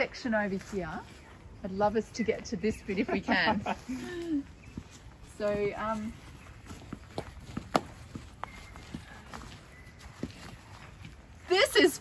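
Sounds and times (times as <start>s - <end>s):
footsteps on grass: 0.0s - 12.0s.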